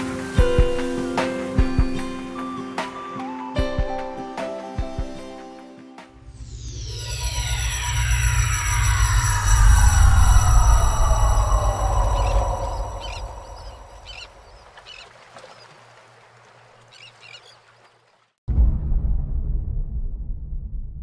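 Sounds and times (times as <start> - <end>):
downward gliding tones: 6.2 - 14.6
deep rumble: 6.3 - 14.6, 18.5 - 21.0.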